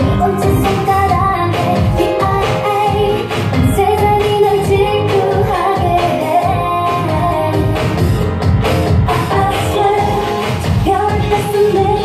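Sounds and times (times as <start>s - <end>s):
woman singing: 0.0s - 8.1s, 9.1s - 12.0s
dance pop music: 0.0s - 12.0s.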